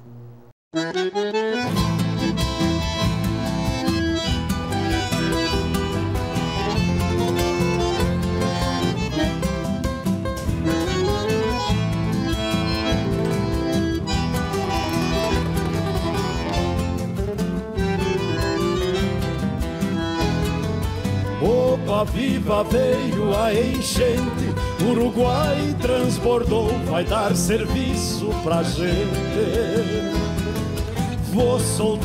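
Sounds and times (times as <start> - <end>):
electric bass: 0.0 - 32.0
guitar: 0.0 - 32.0
bandoneon melody: 0.7 - 32.0.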